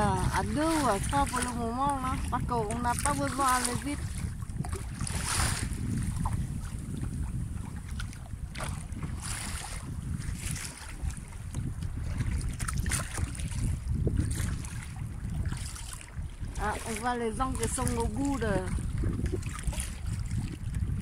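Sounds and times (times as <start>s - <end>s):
paddle strokes splashing: 0.0s - 21.0s
water lapping: 0.0s - 21.0s
wind buffeting microphone: 0.0s - 21.0s.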